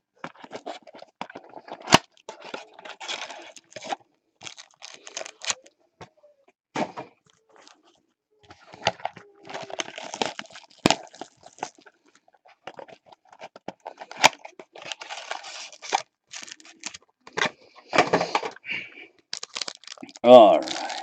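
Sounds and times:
foil wrappers crinkling and tearing: 0.3 - 5.7, 8.6 - 18.4, 19.3 - 21.0.

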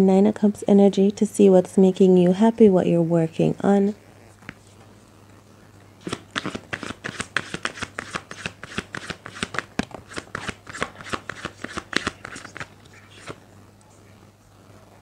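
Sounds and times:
cards being shuffled: 6.0 - 13.4.

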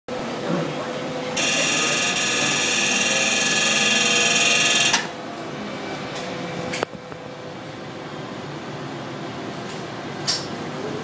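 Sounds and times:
laser firing rapid pulses: 1.4 - 5.0.

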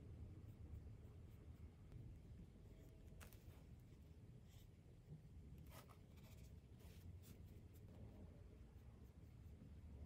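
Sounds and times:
low room hum: 0.0 - 10.0
paintbrush strokes on paper: 0.0 - 10.0.

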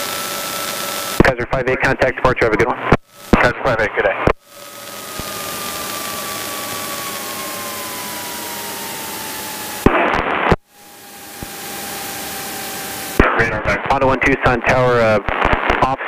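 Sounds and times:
radio transmission burst: 0.0 - 8.6, 9.4 - 16.0.

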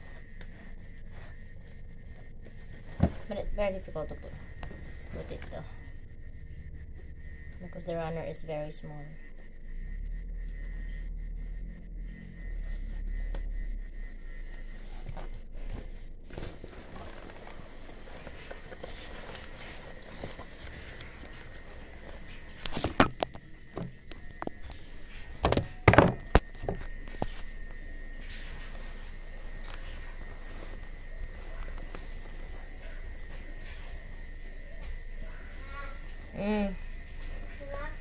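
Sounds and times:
backpack fabric rustling: 16.2 - 22.5
loud thunks: 25.4 - 26.8.

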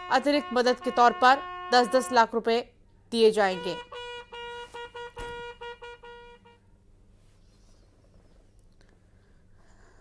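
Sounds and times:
pulsing electronic horn tone: 0.0 - 2.2, 3.5 - 6.7.

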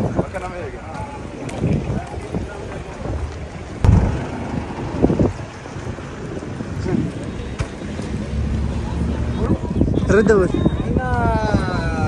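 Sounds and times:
street traffic: 0.0 - 12.0
voices: 0.0 - 12.0
wind buffeting microphone: 0.0 - 12.0.

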